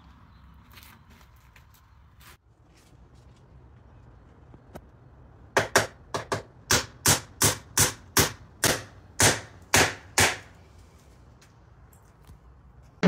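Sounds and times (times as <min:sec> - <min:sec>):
hammer driving nails: 0:05.6 - 0:10.5.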